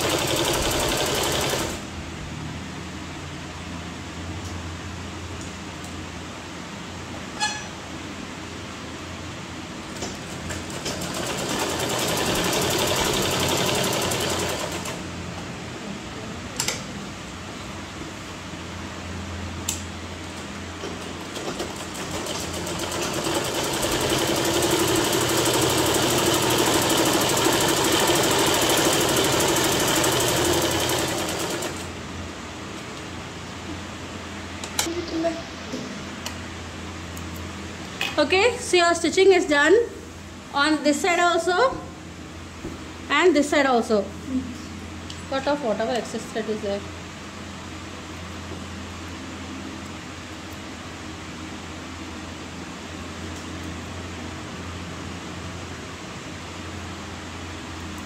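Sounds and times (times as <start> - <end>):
sewing machine stitching: 0.0 - 1.8, 10.7 - 15.0, 21.3 - 31.9.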